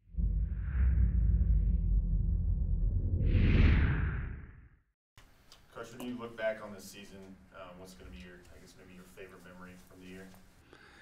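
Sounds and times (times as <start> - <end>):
low rumble: 0.0 - 4.9.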